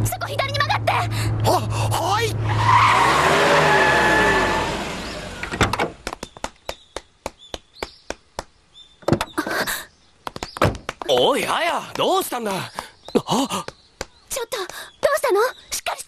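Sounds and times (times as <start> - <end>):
car tyres screeching: 1.1 - 5.8.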